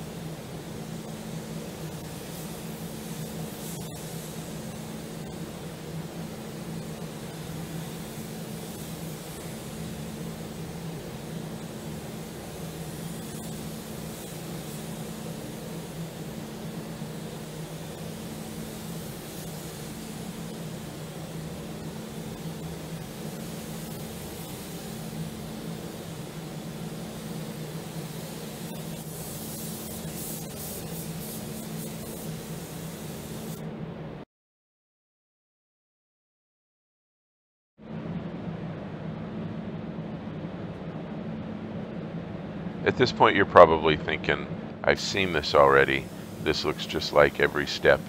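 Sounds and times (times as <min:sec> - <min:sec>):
paint spray gun hissing: 0:00.0 - 0:33.6, 0:45.1 - 0:48.0
low hum of air handling: 0:00.0 - 0:34.2, 0:37.8 - 0:48.0.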